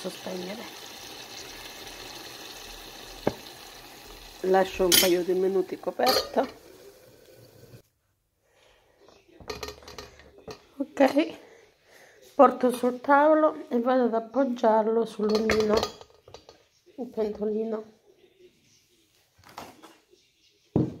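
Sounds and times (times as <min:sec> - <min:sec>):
pot set down on table: 0:03.2 - 0:03.5.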